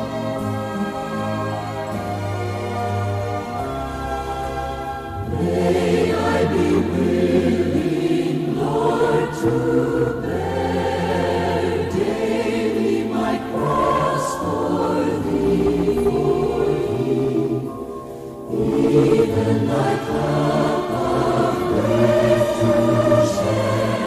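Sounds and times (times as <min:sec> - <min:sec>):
choir singing a hymn: 0:00.0 - 0:24.0
held low bass notes: 0:15.4 - 0:17.5.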